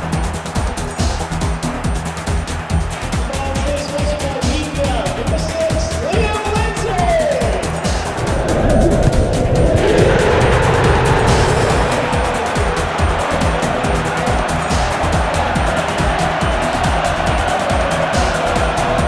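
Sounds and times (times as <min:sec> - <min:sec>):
football crowd roaring: 0:00.0 - 0:05.2, 0:05.9 - 0:19.0
music with steady beat: 0:00.0 - 0:08.2, 0:11.2 - 0:19.0.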